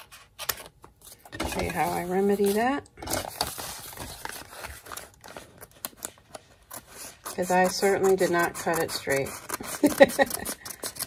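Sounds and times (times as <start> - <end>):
paper rustling: 0.0 - 11.0
scissors snipping paper: 1.6 - 11.0.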